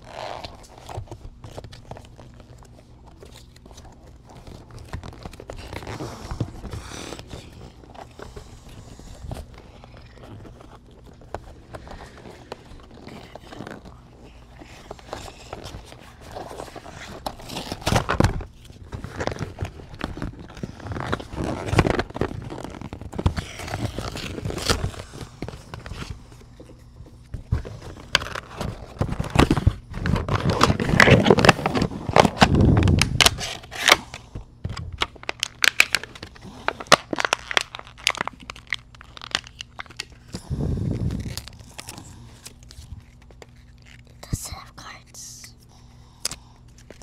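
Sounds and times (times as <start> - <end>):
cardboard and plastic rustling: 0.0 - 47.0
person whispering: 44.2 - 45.7.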